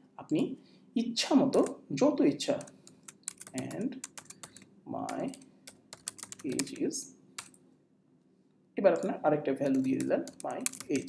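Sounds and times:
person speaking: 0:00.0 - 0:07.5, 0:08.8 - 0:11.0
keyboard key clicks: 0:09.7 - 0:11.0.

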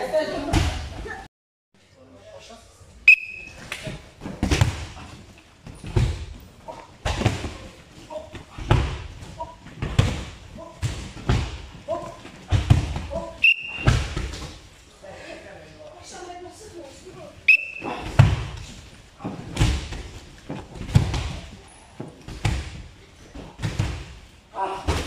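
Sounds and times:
bodies thudding on wrestling mats: 0:04.1 - 0:06.4, 0:07.0 - 0:07.8, 0:08.4 - 0:14.6, 0:17.9 - 0:24.3.

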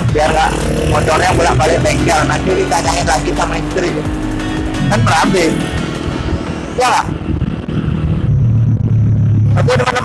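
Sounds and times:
motorcycle engine low drone: 0:00.0 - 0:10.0.

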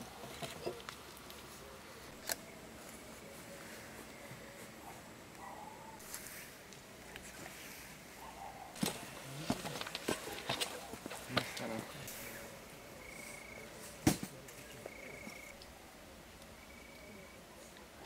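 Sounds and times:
faint voices: 0:00.0 - 0:18.0.

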